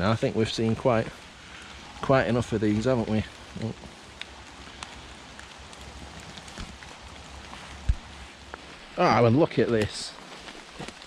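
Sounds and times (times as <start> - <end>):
rain dripping on leaves: 0.0 - 11.0.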